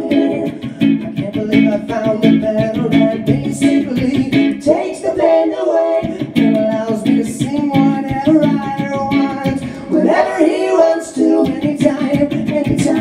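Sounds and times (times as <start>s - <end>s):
electric guitar strumming: 0.0s - 10.3s, 11.2s - 13.0s
man singing with vocal harmony effect: 0.0s - 13.0s.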